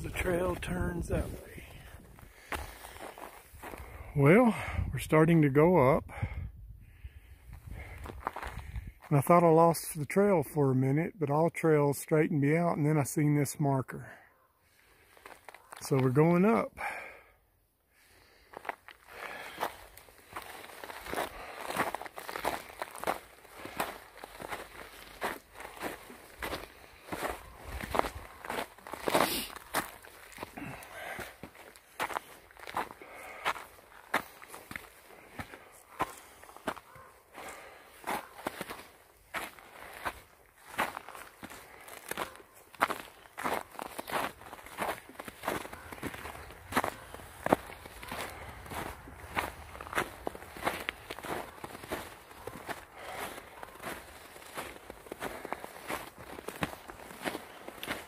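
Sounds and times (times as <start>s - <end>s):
footsteps crunching on snow: 0.0s - 4.7s, 7.6s - 9.3s, 14.9s - 16.6s, 18.2s - 58.0s.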